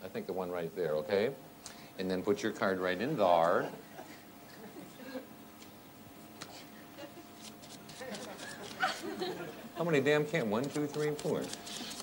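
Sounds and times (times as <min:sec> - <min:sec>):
playing cards being shuffled: 0:07.4 - 0:08.9, 0:10.4 - 0:12.0.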